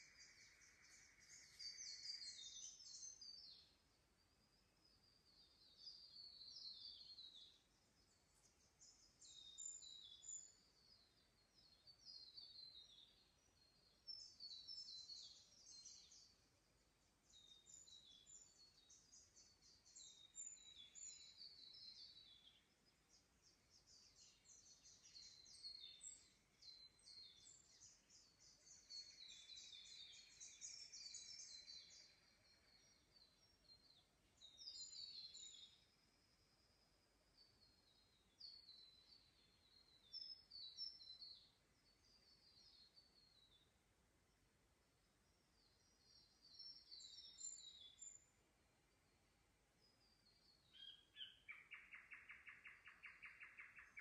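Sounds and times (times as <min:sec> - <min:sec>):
birds chirping: 0:17.3 - 0:35.8.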